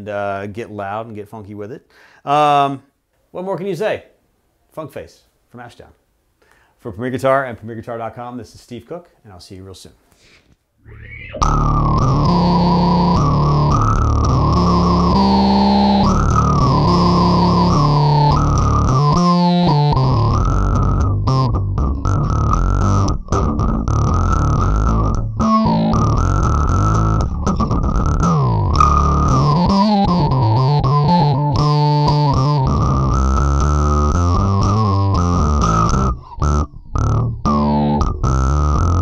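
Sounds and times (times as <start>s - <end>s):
distorted electric bass: 10.9s - 39.0s.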